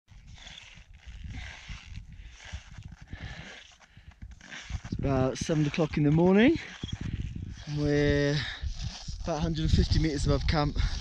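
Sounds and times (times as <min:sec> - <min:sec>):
person breathing hard: 0:01.3 - 0:04.8
wind thumps on microphone: 0:04.0 - 0:11.0.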